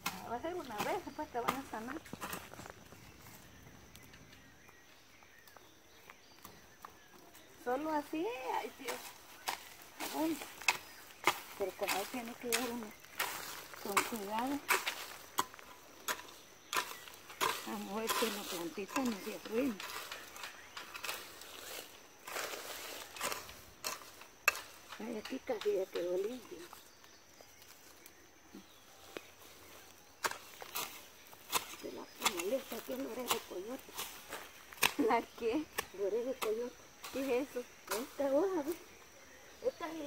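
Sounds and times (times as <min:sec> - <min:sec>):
hoe blade knocking soil: 0:00.0 - 0:02.9, 0:07.9 - 0:26.8, 0:29.7 - 0:38.2
faint scraping and rustling: 0:06.2 - 0:38.7.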